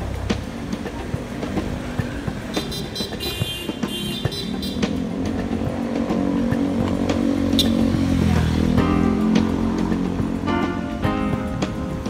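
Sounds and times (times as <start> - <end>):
background music: 0.0 - 12.0
vehicle engine running: 0.0 - 12.0.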